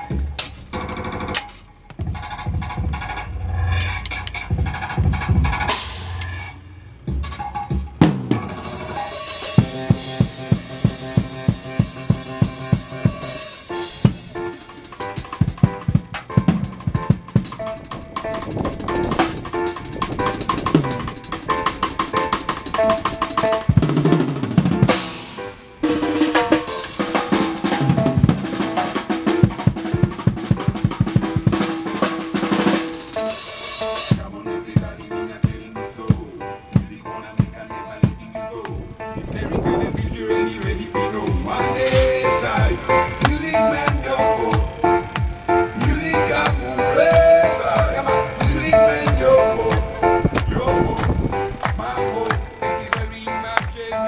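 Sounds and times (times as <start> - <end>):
drum kit played fast: 0.0 - 53.9.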